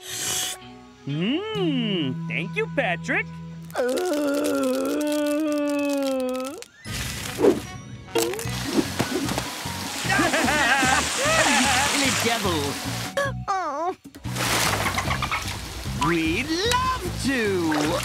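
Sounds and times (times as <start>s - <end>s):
cartoon characters' voices: 1.1s - 2.5s
upbeat cartoon music: 6.7s - 18.0s
water splashing: 8.2s - 13.1s, 14.2s - 18.0s.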